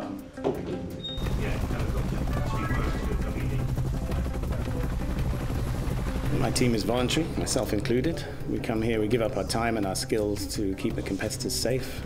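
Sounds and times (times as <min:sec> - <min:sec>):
background music: 0:00.0 - 0:12.0
helicopter rotor chopping: 0:01.2 - 0:11.6.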